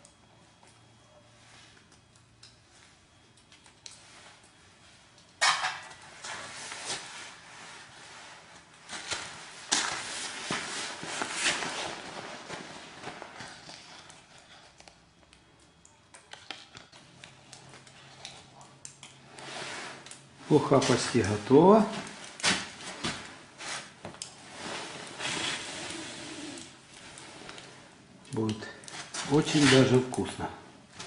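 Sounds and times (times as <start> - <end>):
metal pot and utensils clattering: 5.4 - 6.0.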